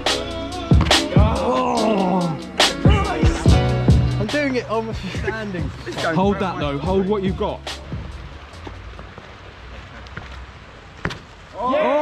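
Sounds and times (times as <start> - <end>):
outdoor hiss: 0.0 - 12.0
footsteps on paving: 5.6 - 11.4.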